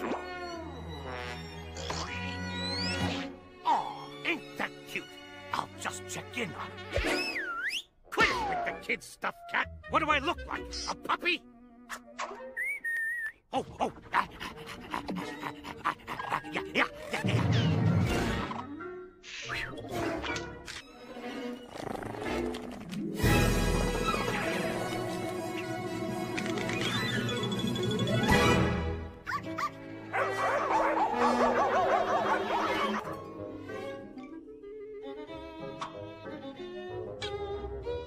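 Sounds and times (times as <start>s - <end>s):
cartoon soundtrack music: 0.0s - 38.0s
short wavering whistle: 12.6s - 13.4s.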